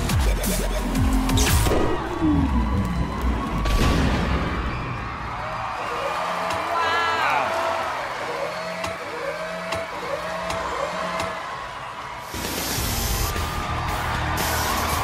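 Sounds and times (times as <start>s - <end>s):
bass-heavy music with sharp hits: 0.0s - 2.2s.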